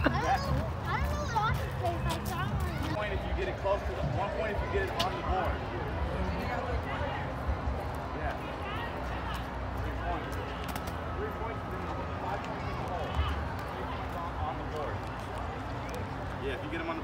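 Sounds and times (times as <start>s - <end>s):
background chatter: 0.0s - 17.0s.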